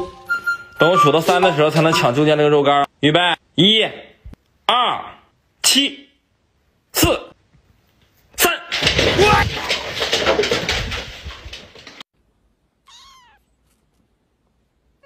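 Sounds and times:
dogs scrambling on wooden floor: 8.7s - 12.0s
kitten mewing: 12.8s - 13.6s.

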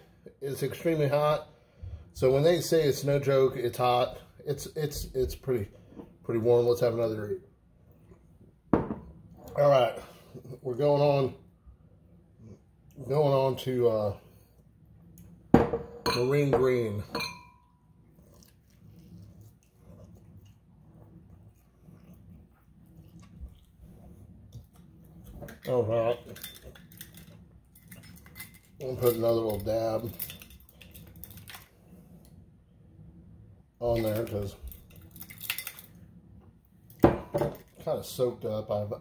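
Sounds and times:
dishware clinking: 17.0s - 17.6s.

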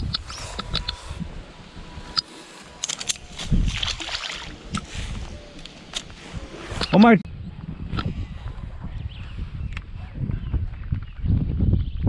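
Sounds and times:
wind on microphone: 0.0s - 12.0s
water splash: 3.5s - 4.9s.

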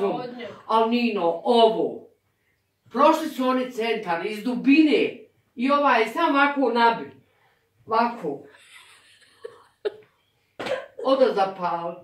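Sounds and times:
elderly woman coughing: 10.6s - 11.2s.

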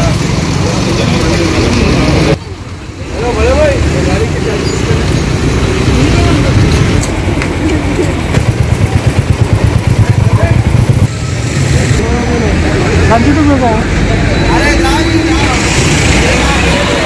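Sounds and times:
road traffic: 0.0s - 17.0s
voices in background: 0.0s - 17.0s
motorcycle engine idling: 7.2s - 11.4s.

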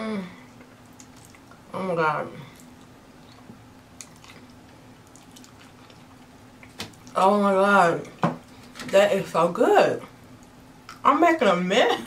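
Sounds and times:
wet chewing: 0.6s - 1.7s, 2.5s - 7.2s.

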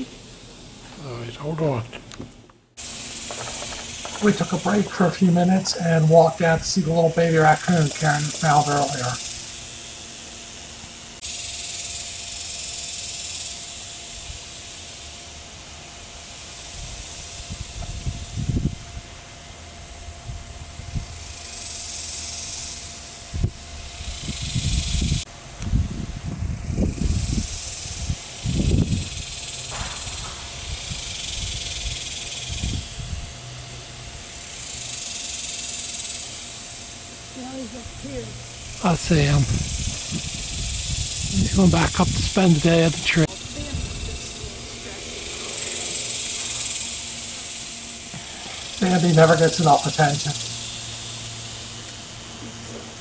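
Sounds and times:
insect buzzing: 2.8s - 53.0s
low microphone rumbles: 37.8s - 47.7s.

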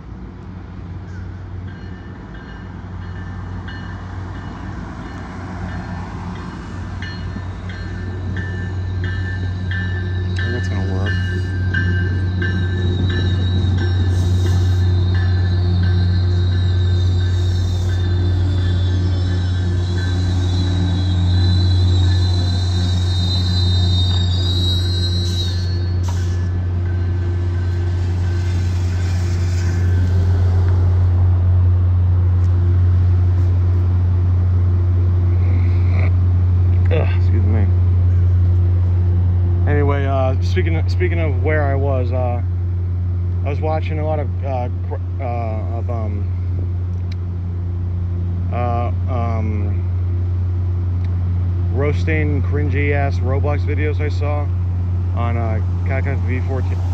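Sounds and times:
diesel train low drone: 0.0s - 56.9s
high-pitched whine: 7.2s - 31.3s.

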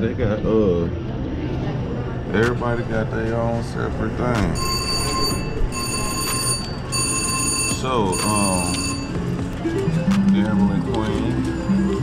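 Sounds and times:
slot machine bell ringing: 4.6s - 12.0s.

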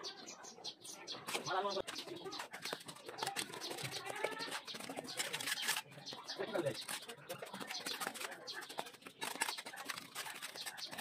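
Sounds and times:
trowels scraping bricks and mortar: 1.2s - 11.0s.

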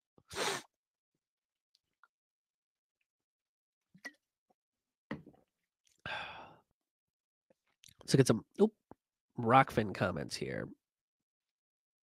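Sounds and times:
man sighing: 6.0s - 6.6s.

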